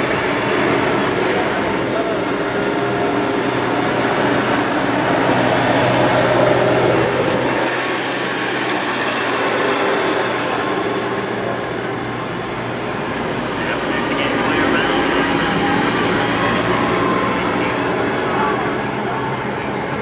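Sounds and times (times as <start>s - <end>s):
faint indistinct voices: 0.0s - 20.0s.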